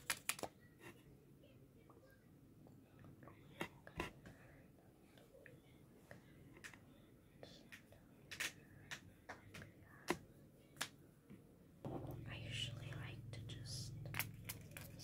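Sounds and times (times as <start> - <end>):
person whispering: 7.3 - 8.2, 11.9 - 14.2
steady low hum: 11.8 - 15.0.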